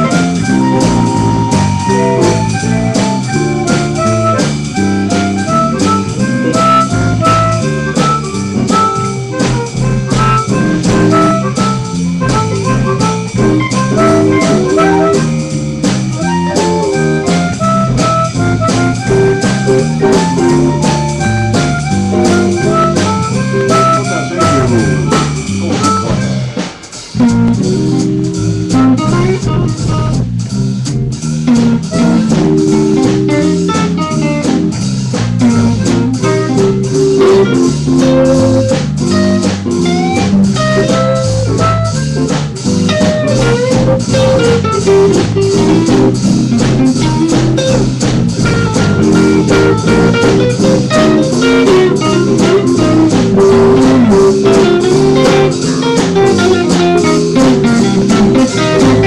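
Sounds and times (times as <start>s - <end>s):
electric guitar bent notes: 0.0s - 59.0s
live blues band playing: 0.0s - 59.0s.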